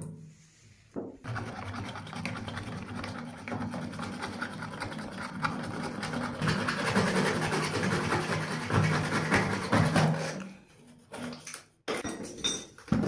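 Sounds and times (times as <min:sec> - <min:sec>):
hacksaw cutting plastic pipe: 0:01.3 - 0:11.6.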